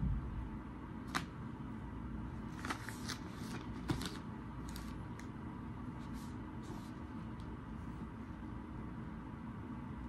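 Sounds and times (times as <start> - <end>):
paper rustling: 2.5 - 5.3.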